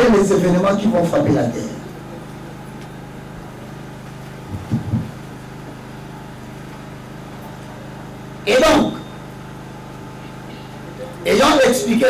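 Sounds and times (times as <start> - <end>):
buzzing low hum: 0.0 - 12.0.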